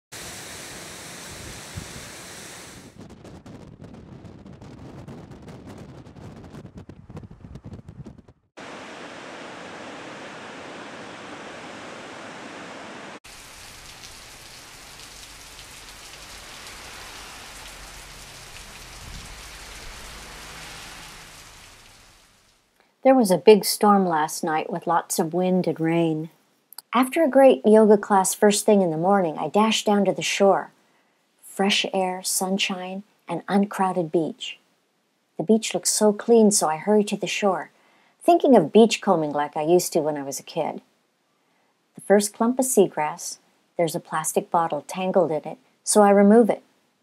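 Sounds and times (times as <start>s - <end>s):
wind: 0.1s - 22.8s.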